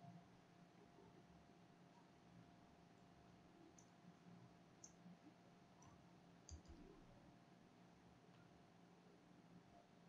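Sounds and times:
faint keyboard and mouse clicks: 0:04.8 - 0:05.1, 0:05.8 - 0:07.1.

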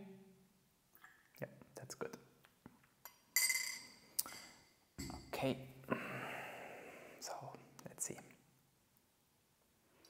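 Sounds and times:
spoon clinking glass tumbler: 0:03.1 - 0:05.2.

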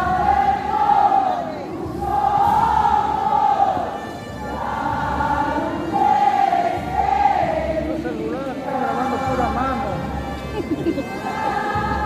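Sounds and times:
murmur of large crowd: 0:00.0 - 0:12.0
voices singing a hymn: 0:00.0 - 0:12.0.

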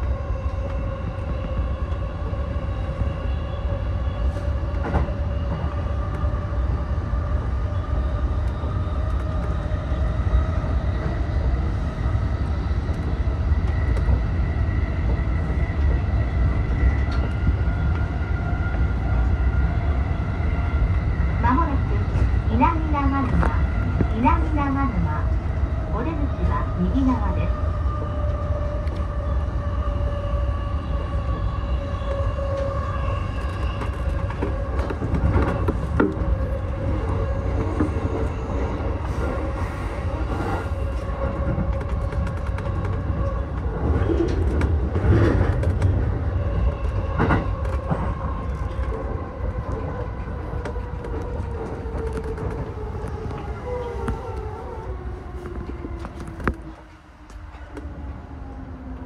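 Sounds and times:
wheels rumbling on rail: 0:00.0 - 0:59.0.

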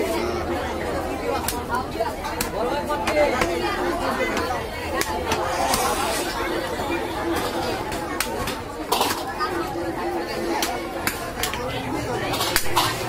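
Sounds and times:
chatter of voices: 0:00.0 - 0:13.0.

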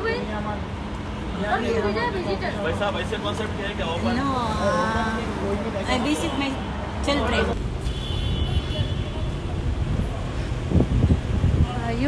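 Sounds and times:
cars passing close by: 0:00.0 - 0:12.0
city street traffic rumble: 0:00.0 - 0:12.0.

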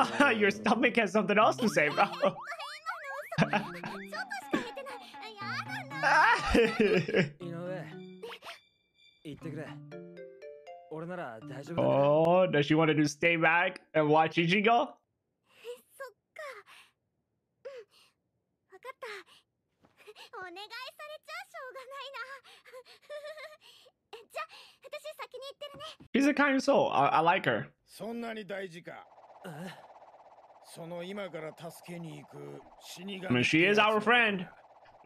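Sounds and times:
person speaking: 0:00.0 - 0:08.1, 0:09.3 - 0:09.8, 0:10.8 - 0:12.7, 0:30.8 - 0:34.5
cartoon boing swoops: 0:01.6 - 0:06.9.

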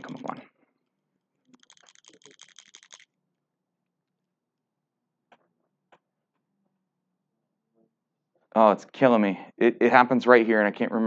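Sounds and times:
keyboard typing clicks: 0:01.6 - 0:03.0.

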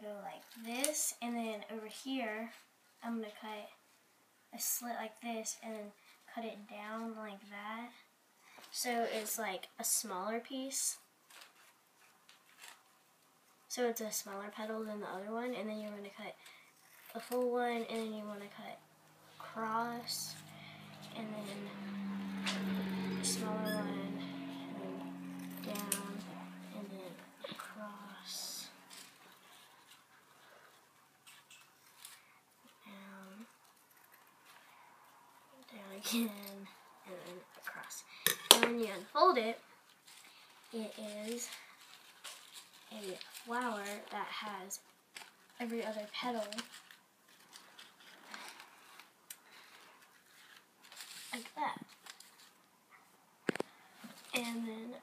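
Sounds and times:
soft handling rustles: 0:39.8 - 0:52.8.

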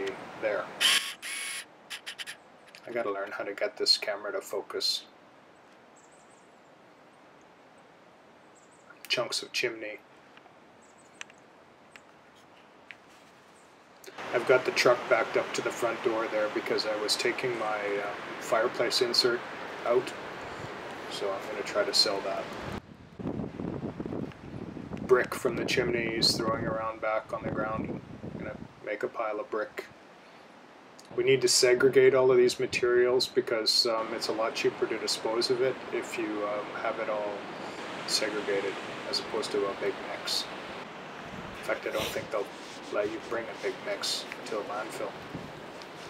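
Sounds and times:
camera lens whirring: 0:00.8 - 0:02.8
wind buffeting microphone: 0:22.6 - 0:28.8, 0:41.0 - 0:42.6, 0:45.1 - 0:45.7.

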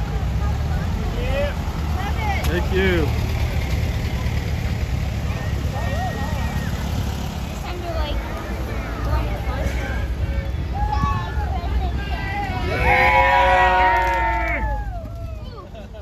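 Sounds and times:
onlookers' voices: 0:00.0 - 0:16.0
vehicle engine rumble: 0:00.0 - 0:16.0.

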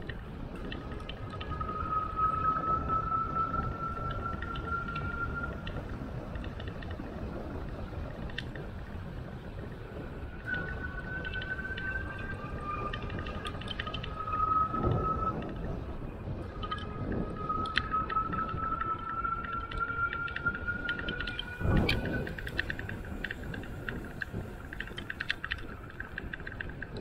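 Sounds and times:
light ticks: 0:00.0 - 0:01.6, 0:03.9 - 0:09.0, 0:10.4 - 0:15.7, 0:17.6 - 0:27.0
wind noise: 0:00.0 - 0:27.0.

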